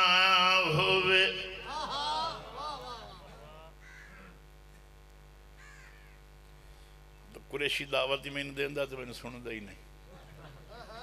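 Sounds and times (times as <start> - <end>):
sound system hum: 0.0 - 11.0
faint crow caws: 3.8 - 4.4, 5.5 - 6.3.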